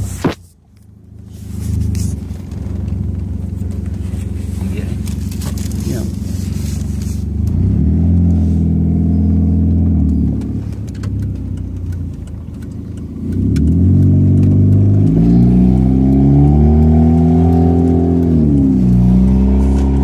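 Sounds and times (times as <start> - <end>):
car engine accelerating: 0.0 - 20.0.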